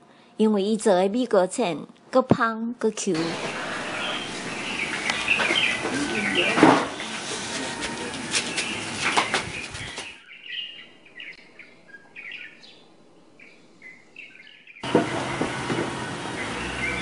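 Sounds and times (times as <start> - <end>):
outdoor noise: 0.0 - 17.0
small birds chirping: 3.2 - 7.3, 8.0 - 17.0.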